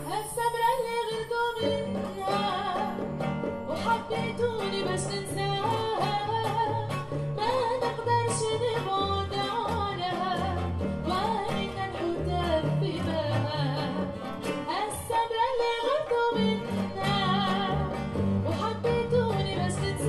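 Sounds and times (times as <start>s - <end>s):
acoustic guitar: 0.0s - 20.0s
bowed cello: 0.0s - 20.0s
hand drum: 0.0s - 20.0s
woman singing: 0.0s - 20.0s.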